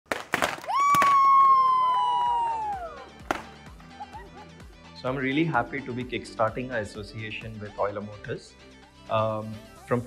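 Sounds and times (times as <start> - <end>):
party poppers popping: 0.1 - 2.2, 3.2 - 3.8.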